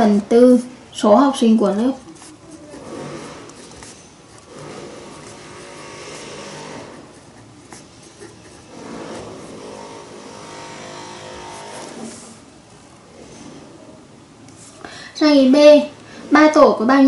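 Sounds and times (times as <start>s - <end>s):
felt-tip pen writing on paper: 2.0s - 10.0s.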